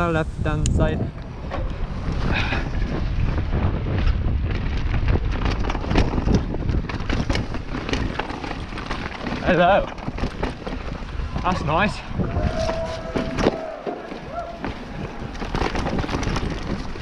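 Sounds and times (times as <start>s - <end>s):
wind buffeting microphone: 0.0s - 17.0s
bike clicks and rattles: 0.5s - 17.0s
tyre rumble: 1.0s - 17.0s.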